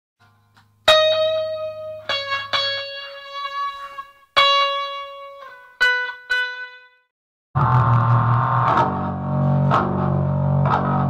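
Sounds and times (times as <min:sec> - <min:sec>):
guitar plucking single notes: 0:00.2 - 0:07.0, 0:07.6 - 0:11.0
low hum: 0:07.6 - 0:10.4.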